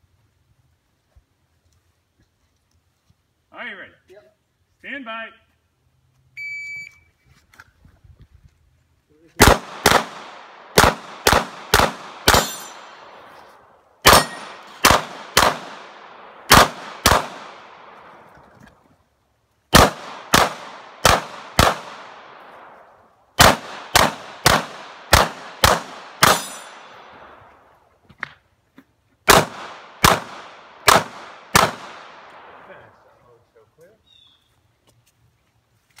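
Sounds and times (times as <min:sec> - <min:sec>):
shot timer beep: 0:06.4 - 0:07.1
pistol shots with echo: 0:09.4 - 0:13.3, 0:14.0 - 0:18.3, 0:19.7 - 0:22.8, 0:23.4 - 0:27.4, 0:29.3 - 0:33.0.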